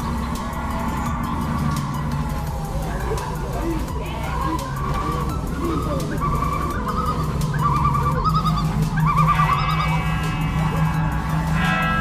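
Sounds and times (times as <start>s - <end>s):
riders screaming: 0.0s - 12.0s
roller coaster rumbling on track: 0.0s - 12.0s
high squealing tone: 4.2s - 12.0s.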